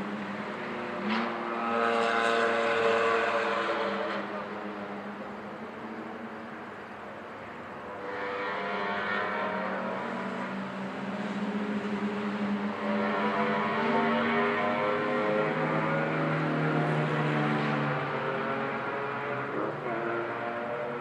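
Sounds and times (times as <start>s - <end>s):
go-kart engines accelerating: 0.0s - 21.0s.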